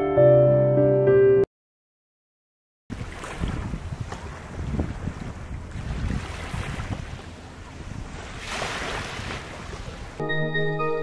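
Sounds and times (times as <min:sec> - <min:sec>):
small waves washing on beach: 0:02.9 - 0:10.2
wind buffeting microphone: 0:02.9 - 0:10.2.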